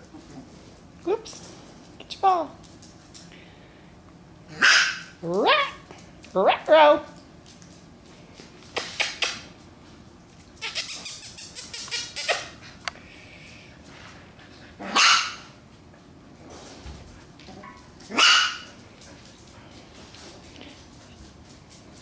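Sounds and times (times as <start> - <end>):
puppies barking: 4.5 - 5.8, 14.8 - 15.5, 17.6 - 18.7.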